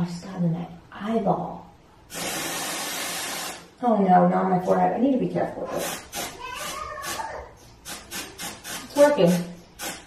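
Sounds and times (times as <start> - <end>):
aerosol spray hissing bursts: 2.1 - 3.7, 5.8 - 6.4, 7.8 - 10.0.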